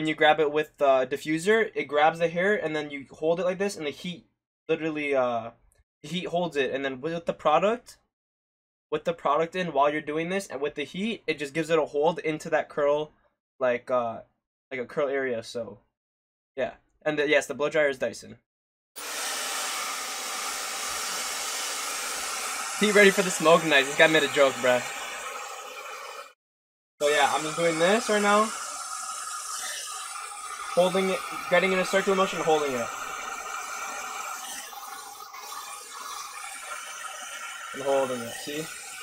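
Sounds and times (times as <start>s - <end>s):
hair dryer blowing: 19.0s - 26.4s, 27.0s - 39.0s.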